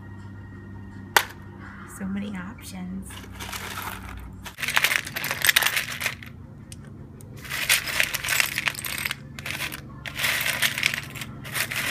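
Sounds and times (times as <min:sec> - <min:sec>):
glass pieces clinking: 0:03.2 - 0:06.3, 0:07.4 - 0:11.9.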